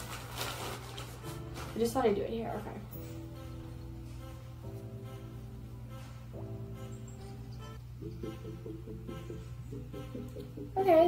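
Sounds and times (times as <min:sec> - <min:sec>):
plastic bag crinkling: 0:00.0 - 0:02.2
soft background music: 0:00.0 - 0:11.0.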